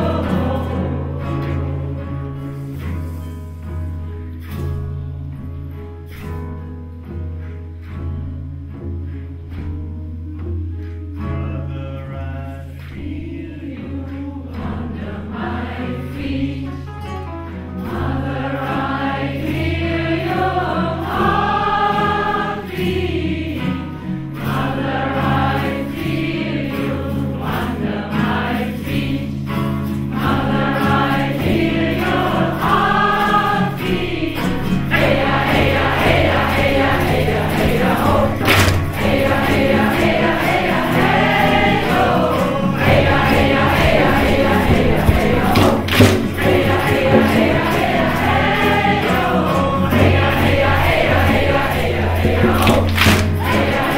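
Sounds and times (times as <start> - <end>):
group of voices chanting: 30.2 - 53.9.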